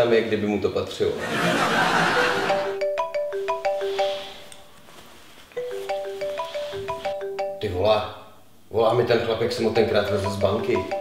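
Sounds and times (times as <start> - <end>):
marimba ringtone: 2.0 - 4.7, 5.6 - 7.9, 9.4 - 11.0.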